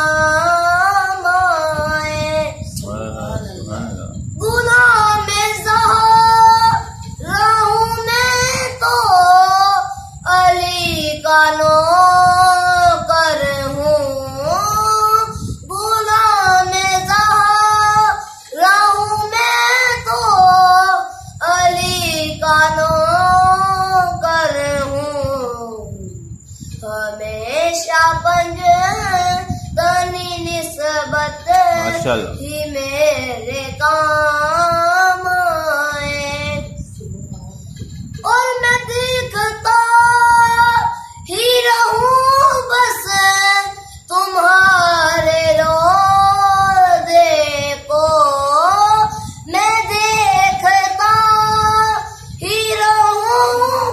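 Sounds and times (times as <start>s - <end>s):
boy singing unaccompanied: 0.0s - 53.9s.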